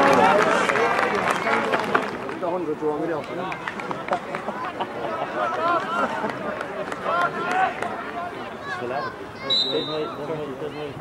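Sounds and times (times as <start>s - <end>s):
spectators talking and calling out: 0.0s - 11.0s.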